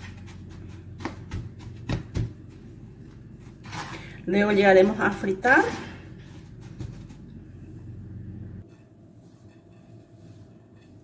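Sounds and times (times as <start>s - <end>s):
hands patting meat into breadcrumbs: 0.0s - 2.7s.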